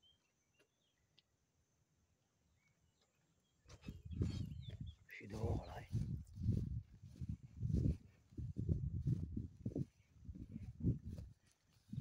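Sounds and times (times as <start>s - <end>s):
footsteps on grass: 3.7s - 12.0s.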